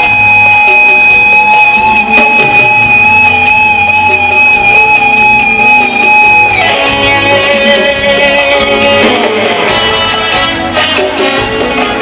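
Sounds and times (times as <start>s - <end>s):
long high held note: 0.0s - 11.7s
rock band playing: 0.0s - 12.0s.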